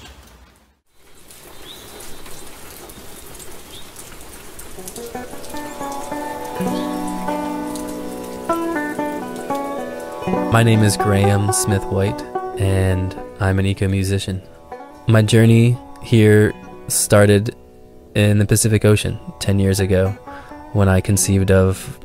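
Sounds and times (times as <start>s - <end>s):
steady rain: 0.0s - 21.0s
intro music with held notes: 4.8s - 22.0s.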